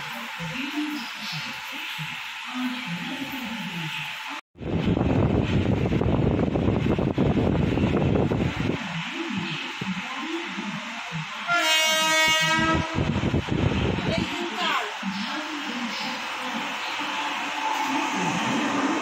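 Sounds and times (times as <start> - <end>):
train coach running rumble: 4.6 - 19.0
train horn: 11.4 - 13.1.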